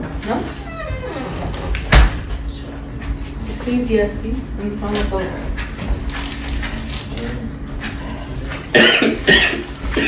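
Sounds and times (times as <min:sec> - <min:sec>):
man coughing: 0:08.7 - 0:10.0.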